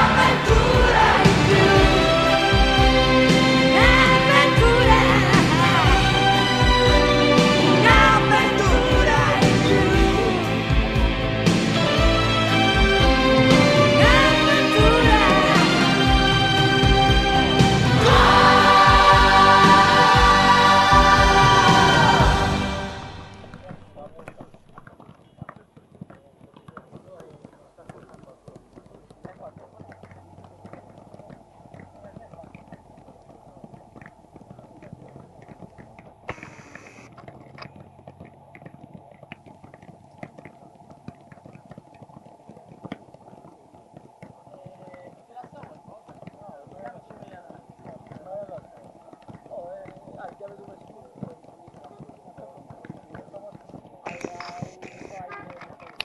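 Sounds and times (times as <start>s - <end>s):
indistinct voices talking: 0.0s - 24.7s, 44.5s - 56.0s.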